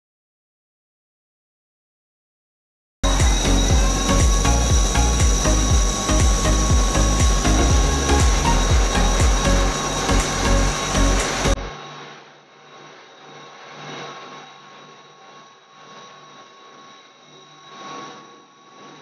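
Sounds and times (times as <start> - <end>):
machine grinding wood: 3.0 - 11.7
low machine hum: 3.0 - 12.8.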